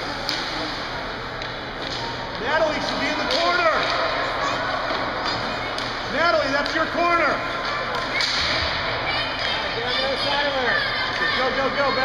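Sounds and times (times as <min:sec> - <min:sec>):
skates sticks and spectators din: 0:00.0 - 0:12.0.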